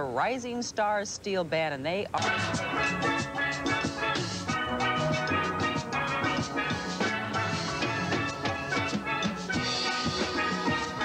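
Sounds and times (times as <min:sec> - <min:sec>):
steel band playing: 0:02.2 - 0:11.0.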